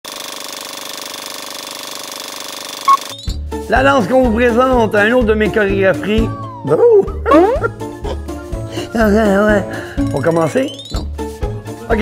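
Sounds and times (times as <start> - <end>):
film projector rattle: 0.0 - 2.9.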